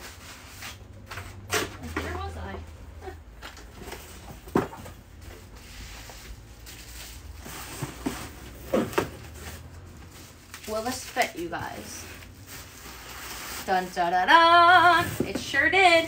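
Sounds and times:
items handled in cardboard box: 3.4s - 13.7s.

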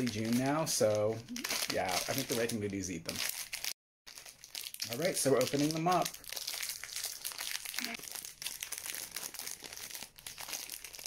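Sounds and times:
foil wrap crinkling: 0.0s - 11.0s
plastic wrapper tearing: 0.0s - 11.0s.

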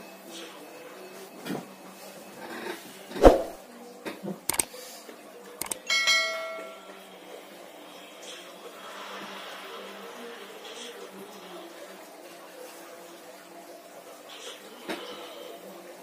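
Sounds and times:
sharp mouse clicks: 4.5s - 4.7s, 5.6s - 5.8s
bright bell ding: 5.8s - 7.0s.

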